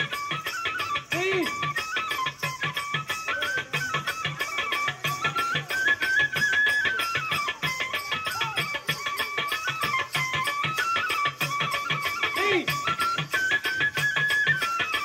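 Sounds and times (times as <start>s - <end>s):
steady drumbeat: 0.0s - 15.0s.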